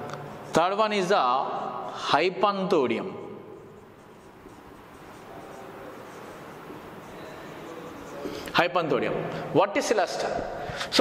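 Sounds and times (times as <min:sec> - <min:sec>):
marker scratching on whiteboard: 0:00.0 - 0:08.9.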